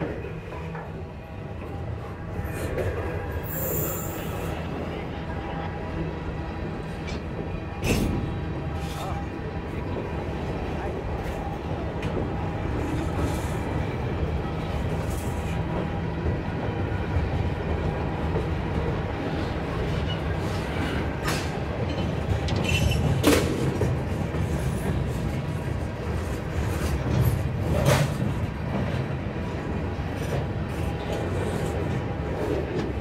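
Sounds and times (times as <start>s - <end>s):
train wheels rumbling on rail: 0.0s - 33.0s.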